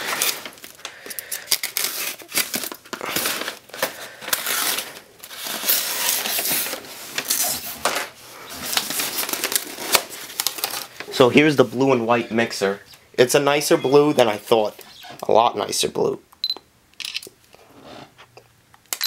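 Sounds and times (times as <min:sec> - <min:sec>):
packing paper crinkling: 0:00.0 - 0:11.8.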